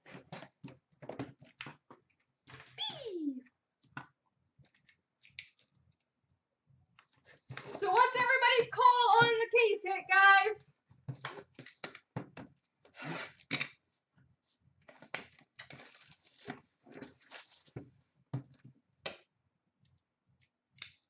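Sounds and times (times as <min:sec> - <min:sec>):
cardboard tearing and scraping: 0:15.7 - 0:17.6.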